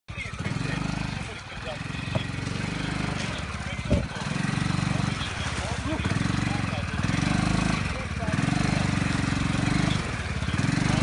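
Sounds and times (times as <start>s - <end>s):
quad bike engine revving: 0.1s - 11.0s.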